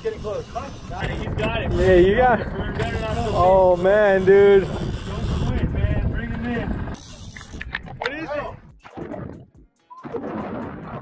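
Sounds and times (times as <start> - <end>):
fishing reel winding: 0.0 - 1.2, 6.9 - 8.0
low rumble of wind and boat: 0.0 - 7.0.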